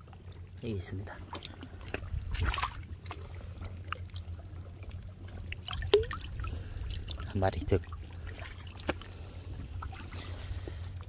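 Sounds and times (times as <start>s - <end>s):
shallow water splashing: 0.0s - 11.0s
steady low rumble: 0.0s - 11.0s
wet clicks and drips: 5.5s - 7.3s.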